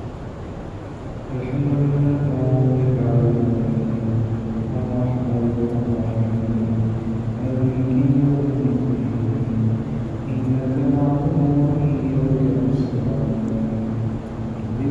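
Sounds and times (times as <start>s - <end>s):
man chanting in held notes: 1.3s - 14.9s.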